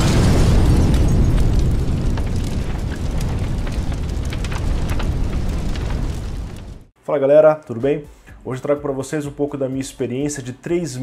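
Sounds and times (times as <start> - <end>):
deep explosion rumble: 0.0 - 6.9
fire crackles: 0.0 - 7.0.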